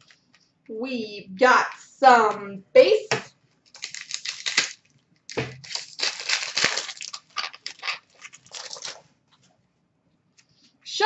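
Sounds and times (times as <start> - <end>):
wrapper rustling: 3.6 - 9.4.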